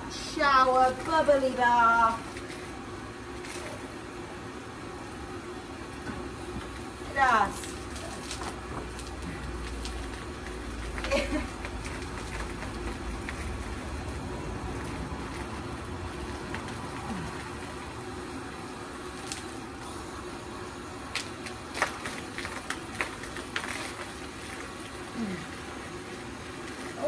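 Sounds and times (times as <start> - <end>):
foam sprayer hissing: 0.0 - 27.0.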